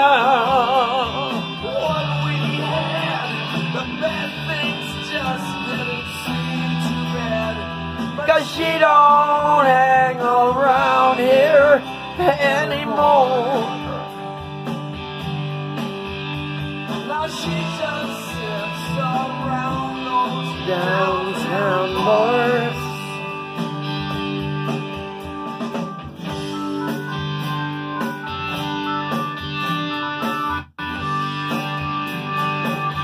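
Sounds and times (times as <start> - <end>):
blues-rock instrumental with guitar: 0.0 - 33.0.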